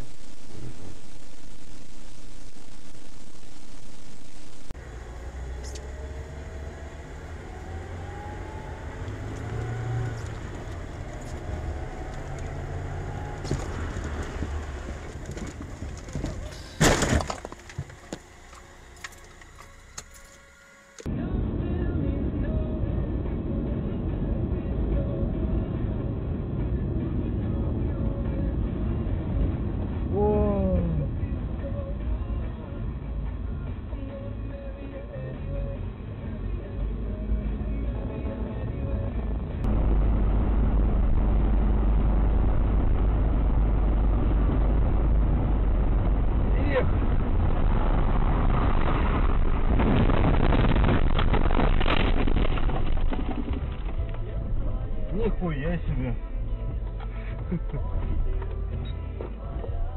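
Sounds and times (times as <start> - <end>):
car engine and road noise: 0.0 - 59.9
car crash: 13.2 - 21.1, 39.7 - 55.4
debris clattering: 13.4 - 20.4, 49.7 - 54.3
music playing: 53.9 - 59.9.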